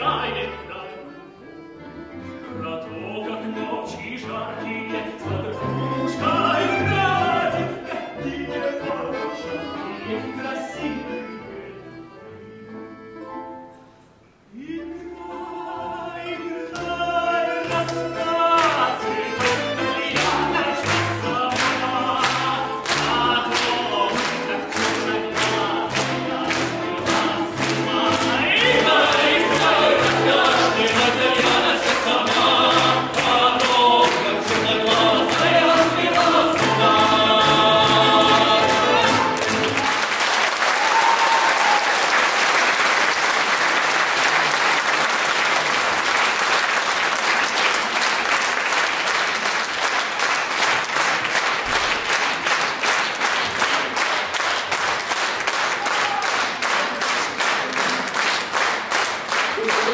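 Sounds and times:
male choir singing in harmony: 2.5 - 11.4, 14.6 - 39.8
audience applause: 37.8 - 59.9.

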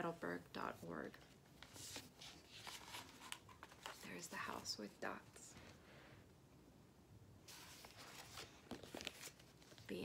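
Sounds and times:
paper pages rustling and flapping: 1.2 - 4.2, 7.5 - 10.0.

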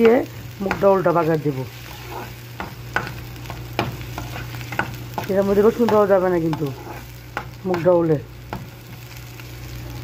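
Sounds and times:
onions sizzling in a frying pan: 0.0 - 10.0
spoon scraping and knocking pan: 1.8 - 9.0.

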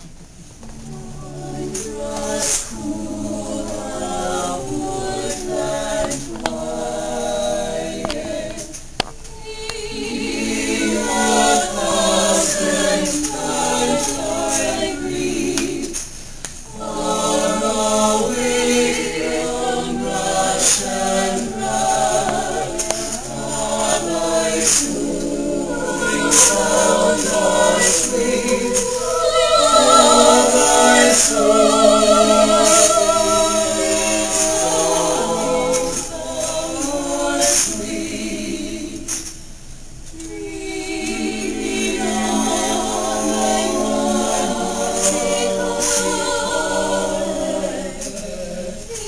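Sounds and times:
choir singing a cappella: 0.0 - 49.0.

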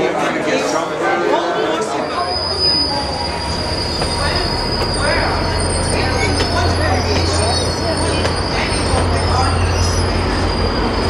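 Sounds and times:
train coaches rolling past: 0.1 - 11.0
high-pitched wheel squeal: 2.0 - 11.0.

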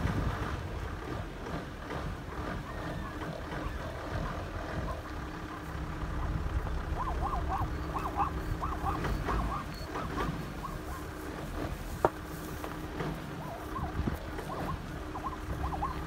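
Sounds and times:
low steady rumble: 0.0 - 16.0
zebra yelping barks: 3.3 - 11.4, 13.2 - 16.0.

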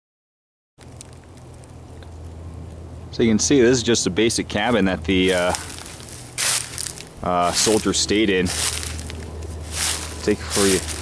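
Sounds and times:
low hum and hiss: 0.8 - 11.0.

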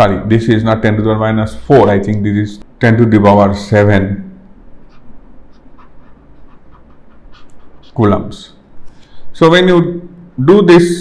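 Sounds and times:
stylus scratching on pen tablet: 4.8 - 8.4.

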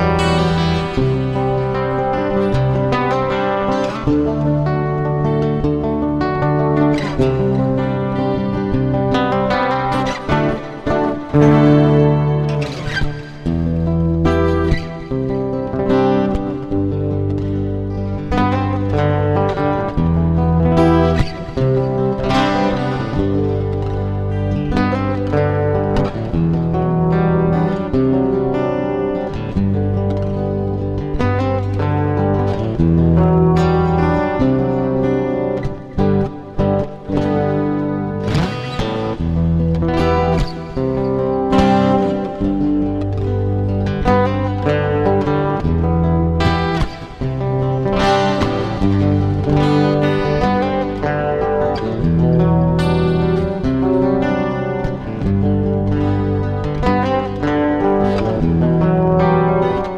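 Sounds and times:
plucked guitar lines: 0.0 - 59.9.

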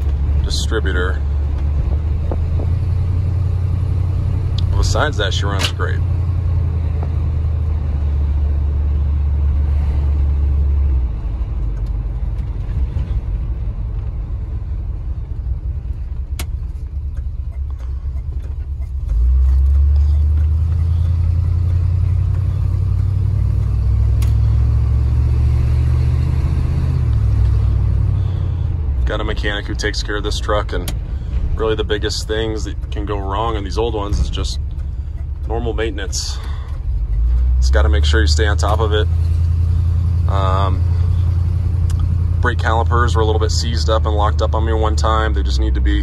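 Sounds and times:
pickup engine rumble from cab: 0.0 - 46.0.

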